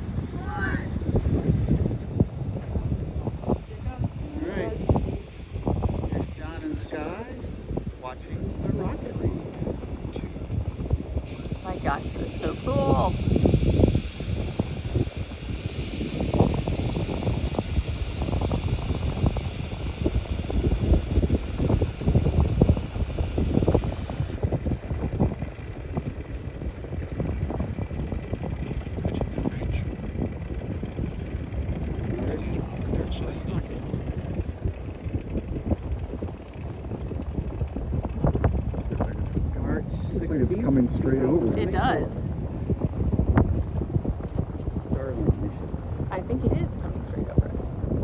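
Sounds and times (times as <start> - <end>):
wind buffeting microphone: 0.0 - 48.0.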